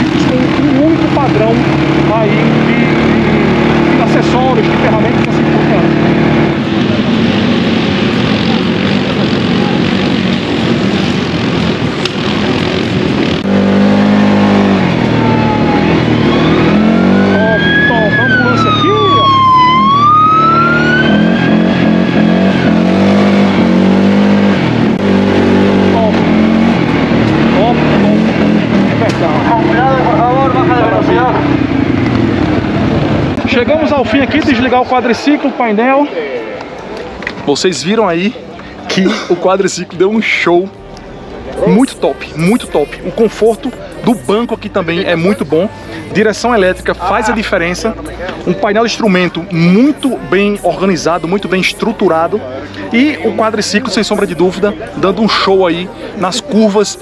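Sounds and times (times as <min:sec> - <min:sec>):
atv engine revving: 0:00.0 - 0:35.3, 0:40.2 - 0:57.0
high whine gliding: 0:40.7 - 0:57.0.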